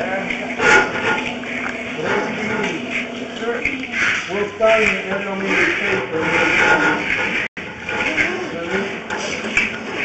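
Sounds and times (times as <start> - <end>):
indistinct talking: 0.0 - 10.0.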